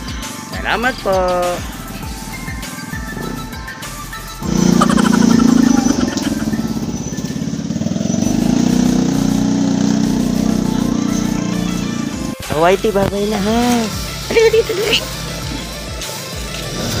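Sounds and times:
background music: 0.0 - 17.0
motorcycle engine running: 0.6 - 17.0.

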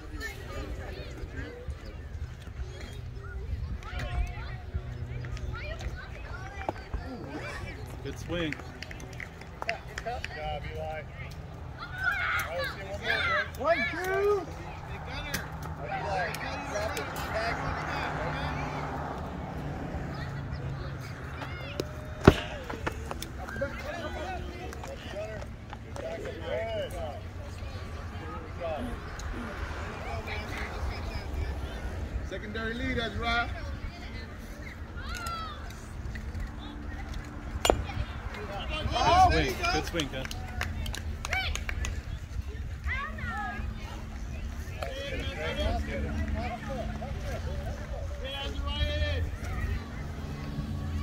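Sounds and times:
bat striking ball: 21.8 - 23.2, 37.6 - 38.2.

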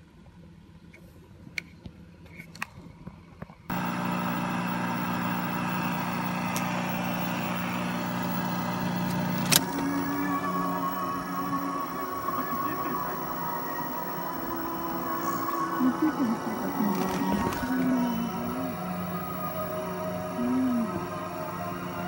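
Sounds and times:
switch turning on: 3.7 - 15.6
tape recorder motor hum: 3.7 - 22.0.

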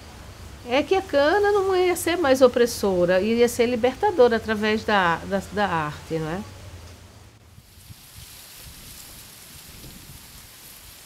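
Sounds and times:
steady hiss-like rushing noise: 0.0 - 11.0.

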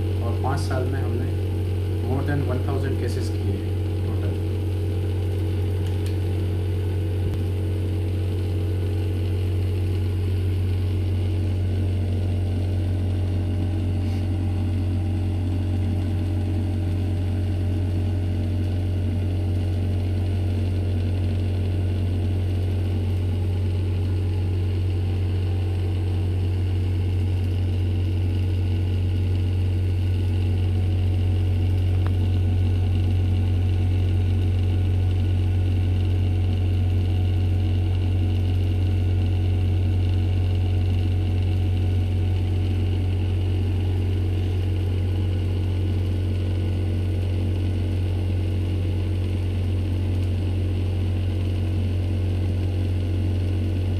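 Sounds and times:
low machine hum: 0.0 - 53.9.

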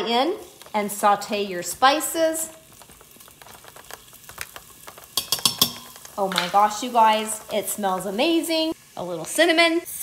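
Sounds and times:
ginger sizzling in hot fat: 0.0 - 10.0.

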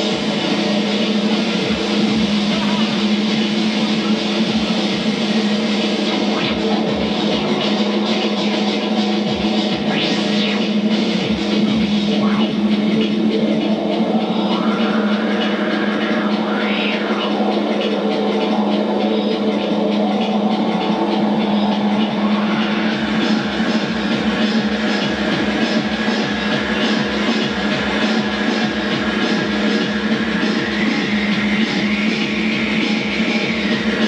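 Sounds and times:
steady low beat: 0.0 - 34.0
synthesizer drone with glides: 0.0 - 34.0.

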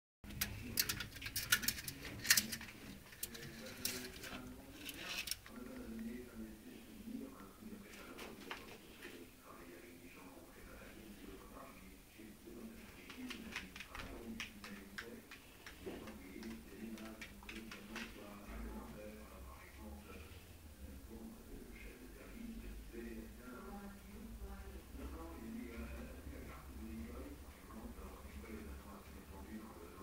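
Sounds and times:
lizard claws scratching glass: 0.8 - 5.5.

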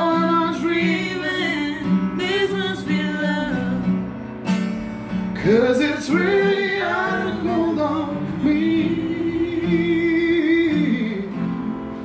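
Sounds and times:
strummed acoustic guitar: 0.0 - 12.0
voices singing: 5.4 - 11.9.

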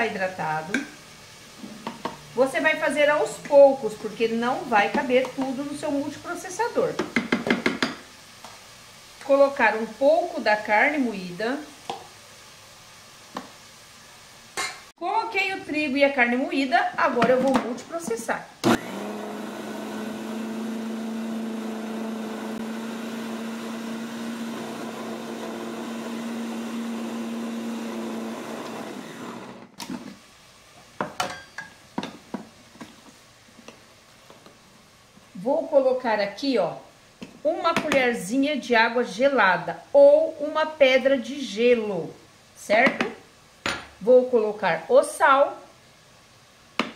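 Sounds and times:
food processor motor running: 18.6 - 29.7.

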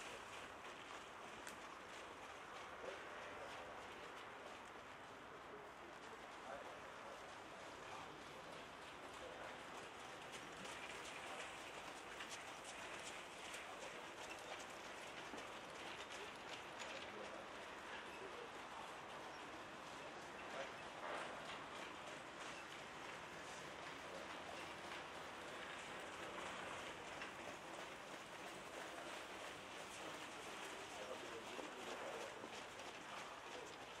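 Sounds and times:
hoofbeats of trotting horses: 0.0 - 34.0
steady background noise: 0.0 - 34.0.

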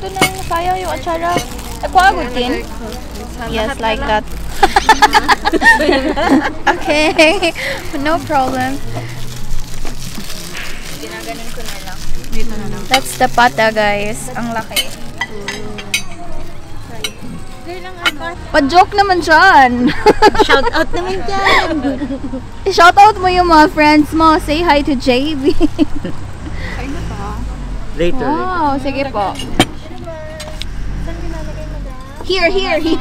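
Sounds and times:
faint voices: 0.0 - 33.0
utensils clinking on plates: 12.8 - 18.4.

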